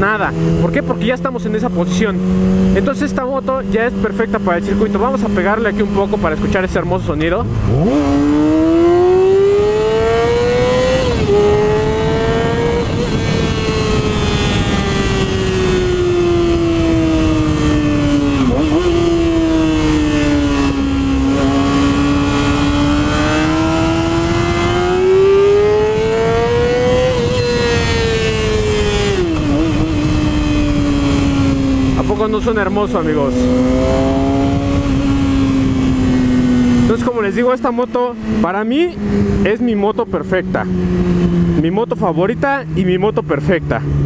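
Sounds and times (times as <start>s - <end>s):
rider speaking: 0.0s - 7.5s, 31.8s - 35.0s, 36.7s - 40.9s, 41.5s - 44.0s
motorcycle engine revving: 0.0s - 44.0s.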